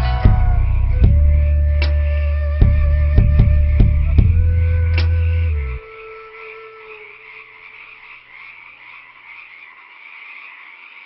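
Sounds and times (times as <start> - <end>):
held music note: 0.0 - 7.0
animal chorus pulsing: 0.0 - 11.0.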